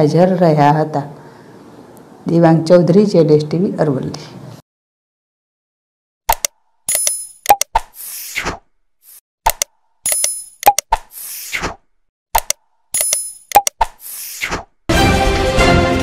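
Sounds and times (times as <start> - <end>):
sharp clicks: 6.3 - 8.0, 9.5 - 11.1, 12.4 - 14.0.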